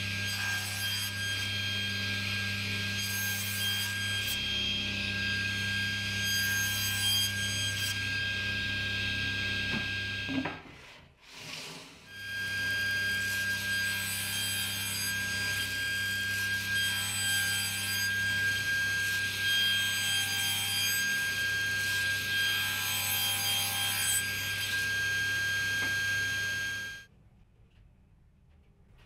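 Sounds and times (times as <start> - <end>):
table saw cutting wood: 0.0 - 27.1.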